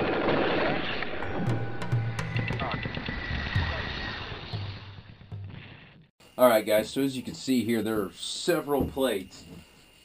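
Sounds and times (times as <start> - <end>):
music: 1.0 - 6.1.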